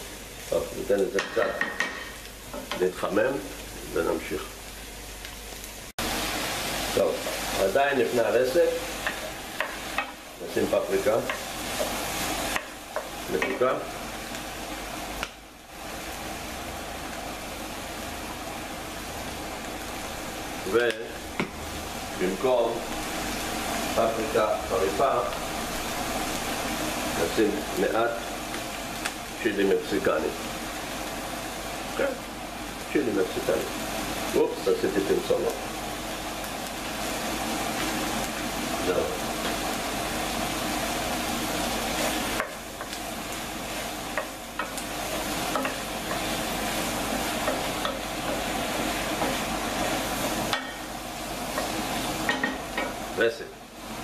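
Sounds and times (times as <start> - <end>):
food sizzling in a frying pan: 0.0 - 54.0
wooden spoon stirring: 41.6 - 52.1.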